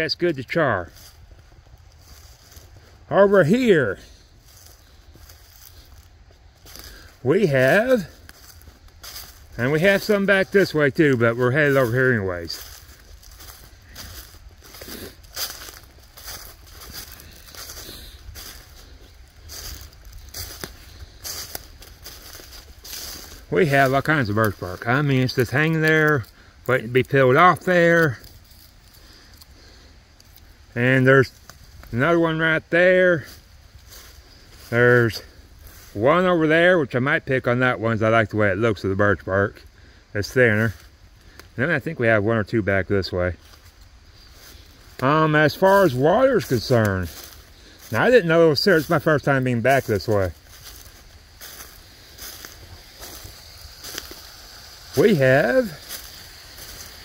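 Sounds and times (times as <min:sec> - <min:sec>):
footsteps in dry leaves: 0:00.0 - 0:57.0
outdoor background hiss: 0:00.0 - 0:57.0
man's voice: 0:03.1 - 0:04.2, 0:07.2 - 0:08.2, 0:09.6 - 0:12.7, 0:23.5 - 0:28.2, 0:31.9 - 0:33.3, 0:45.0 - 0:47.2, 0:47.8 - 0:50.4, 0:54.9 - 0:55.9.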